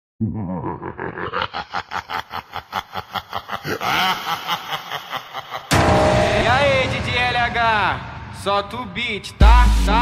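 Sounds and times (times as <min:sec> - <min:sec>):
person laughing: 0:00.2 - 0:06.0.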